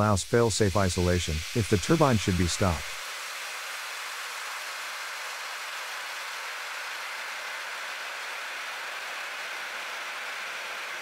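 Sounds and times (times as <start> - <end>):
water rushing through pipes: 0.0 - 7.1.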